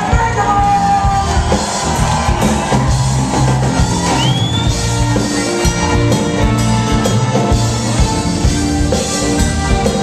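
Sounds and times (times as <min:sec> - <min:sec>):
bass: 0:00.0 - 0:10.0
drum kit: 0:00.0 - 0:10.0
soul band playing: 0:00.0 - 0:10.0.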